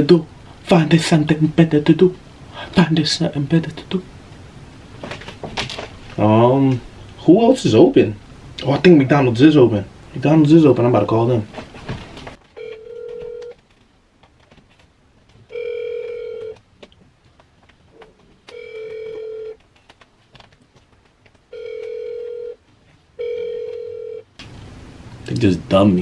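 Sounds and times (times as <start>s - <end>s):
phone ringback tone: 12.6s - 13.6s, 15.5s - 16.6s, 18.5s - 19.6s, 21.5s - 22.6s, 23.2s - 24.3s.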